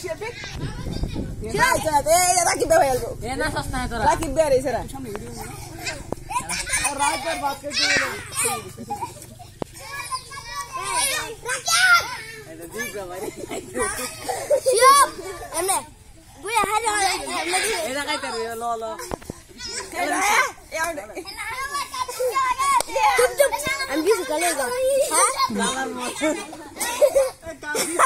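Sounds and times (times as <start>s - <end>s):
children calling and chattering: 0.0s - 28.0s.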